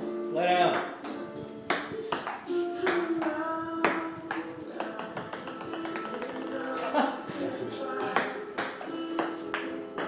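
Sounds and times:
background music: 0.0s - 10.0s
ping-pong ball clicks: 0.7s - 6.8s, 8.0s - 10.0s.

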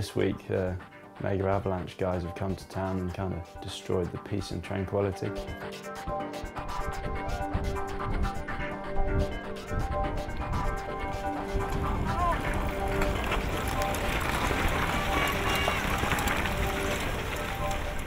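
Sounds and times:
background music: 0.0s - 18.0s
bike tyres rushing on rocky ground: 10.3s - 18.0s
people shouting: 14.6s - 16.6s.

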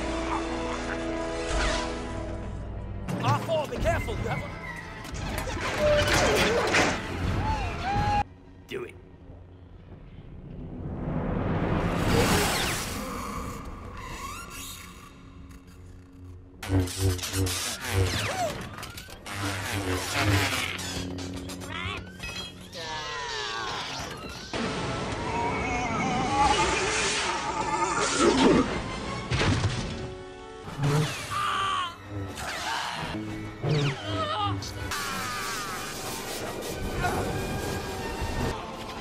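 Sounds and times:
lightsaber sounds: 16.6s - 22.5s.

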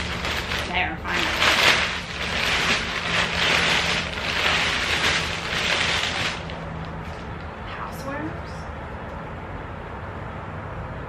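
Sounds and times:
plastic bag rustling and crinkling: 0.0s - 7.5s.

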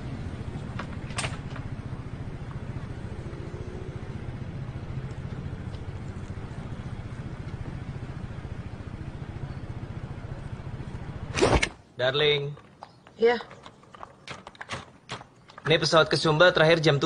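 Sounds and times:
motor scooter engine idling: 0.0s - 11.4s.

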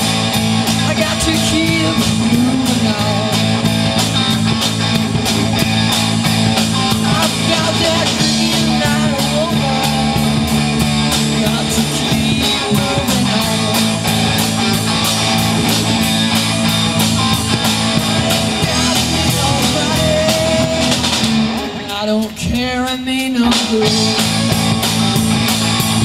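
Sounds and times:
electric guitar: 0.0s - 26.0s
live rock band playing: 0.0s - 26.0s.

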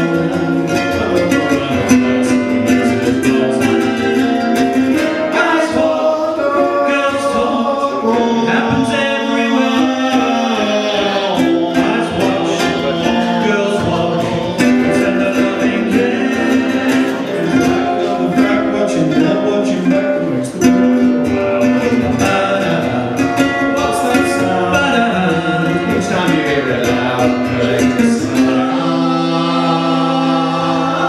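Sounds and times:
people singing harmonies: 0.0s - 31.0s
ukuleles strummed: 0.0s - 31.0s.

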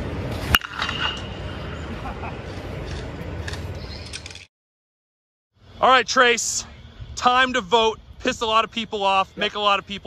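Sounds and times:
outdoor background noise: 0.0s - 4.5s, 5.5s - 10.0s
bat hitting baseball: 0.4s - 1.5s.

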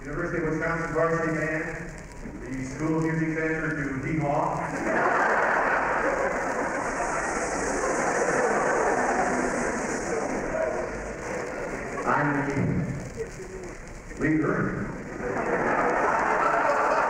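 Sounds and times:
audience laughing: 4.6s - 12.0s, 15.0s - 17.0s
audience applauding: 4.7s - 12.1s, 15.0s - 17.0s.

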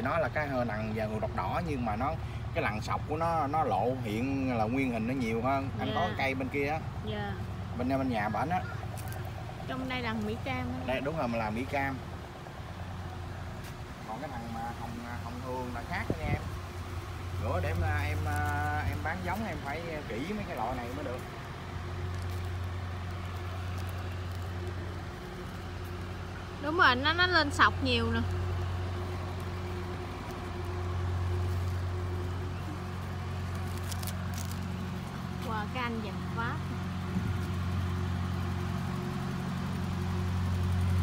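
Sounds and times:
motor hum: 0.4s - 41.0s.

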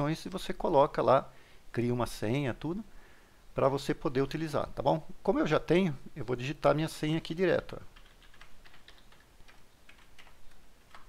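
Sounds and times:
faint keyboard keystrokes: 8.0s - 11.0s.

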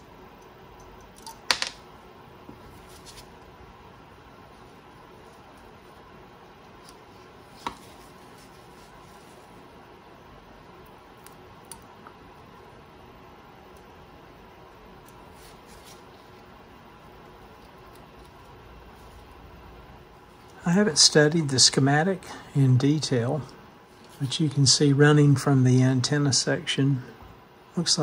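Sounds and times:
faint steady hiss: 0.0s - 28.0s.

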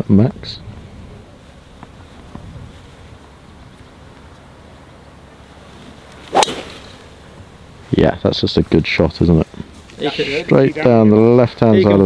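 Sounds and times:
golf driver striking ball: 6.2s - 7.2s.

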